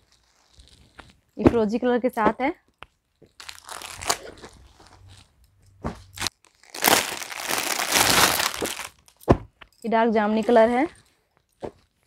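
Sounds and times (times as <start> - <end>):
fabric and plastic rustling: 0.0 - 1.4, 3.0 - 9.3.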